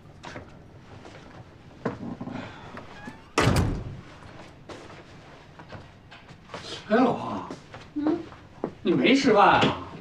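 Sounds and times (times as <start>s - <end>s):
rustling of people coming in: 0.0s - 10.0s
front door shutting with thud: 2.8s - 4.2s.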